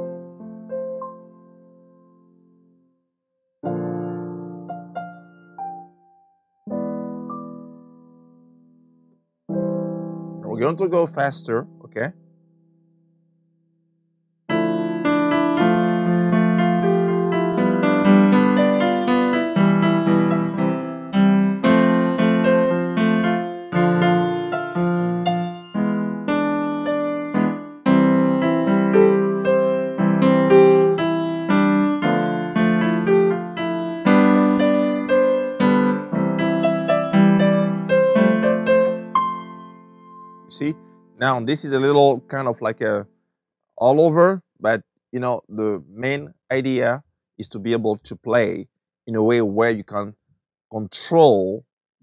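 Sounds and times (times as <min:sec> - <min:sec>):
digital keyboard chords: 0:03.6 - 0:12.5, 0:14.5 - 0:43.1.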